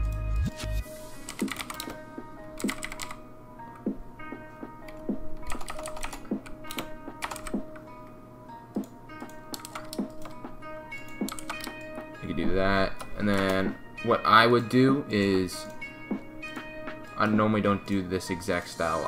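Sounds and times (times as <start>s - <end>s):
background music with soft beat: 0.0s - 19.0s
typing on computer keyboard: 1.3s - 2.0s, 2.6s - 3.2s, 4.9s - 7.6s, 9.5s - 10.4s, 11.1s - 11.8s, 13.0s - 13.6s.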